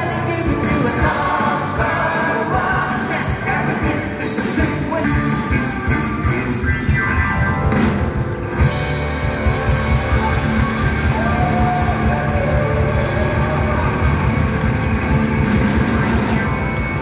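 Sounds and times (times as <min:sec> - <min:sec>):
rock band playing: 0:00.0 - 0:17.0.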